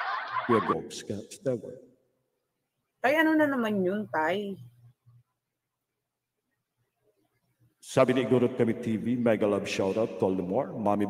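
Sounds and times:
person chuckling: 0.0s - 0.8s.

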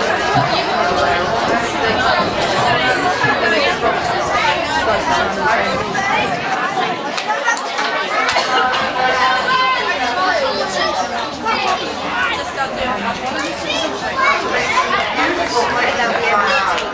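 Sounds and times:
people chatting: 0.0s - 16.9s.

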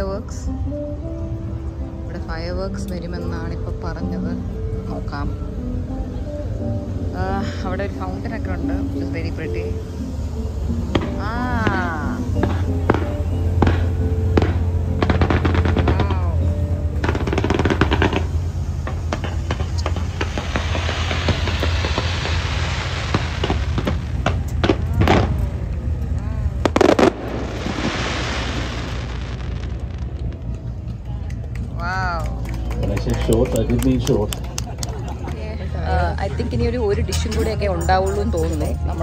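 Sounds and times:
steady low hum: 5.6s - 33.0s
fireworks crackling and banging: 10.7s - 39.0s
hissing rocket launches: 17.1s - 25.4s, 26.6s - 30.5s.

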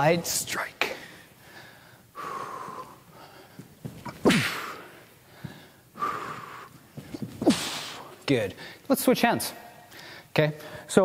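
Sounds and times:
staff swinging: 3.9s - 4.9s
person exhaling sharply: 4.1s - 5.0s, 7.4s - 8.2s.

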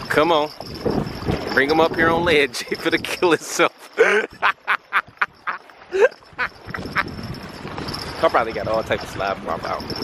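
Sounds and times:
man laughing: 3.9s - 7.2s.

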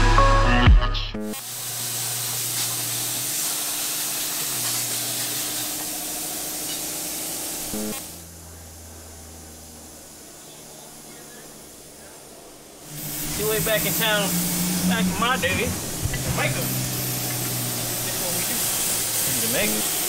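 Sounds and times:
air hissing: 1.4s - 20.0s
turboprop plane flying overhead: 8.2s - 19.6s.

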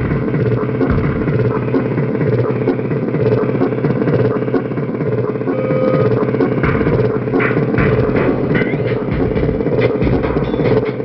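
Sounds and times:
steady tone: 0.0s - 10.8s
distorted electronic drum beat: 0.0s - 11.0s.

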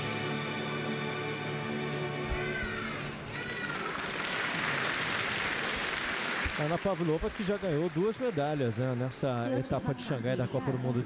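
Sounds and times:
audience applause: 2.4s - 9.4s.

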